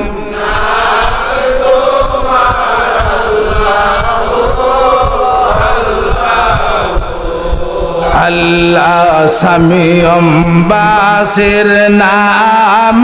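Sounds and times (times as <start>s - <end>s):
voices chanting: 0.0s - 9.6s.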